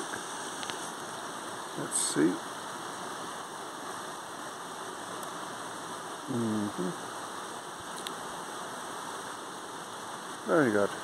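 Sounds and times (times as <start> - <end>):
waterfall rushing over rocks: 0.0 - 11.0.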